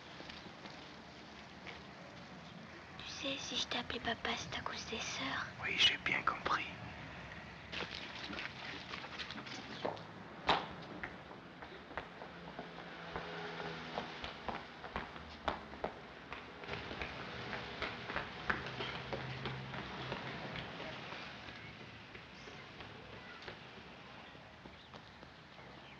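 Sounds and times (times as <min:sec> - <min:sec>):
running footsteps on pavement: 0:09.3 - 0:25.9.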